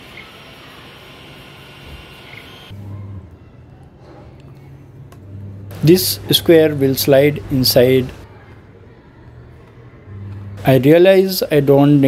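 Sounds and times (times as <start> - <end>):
printer fans and motors whirring: 0.0 - 12.0
low hum: 4.4 - 6.4.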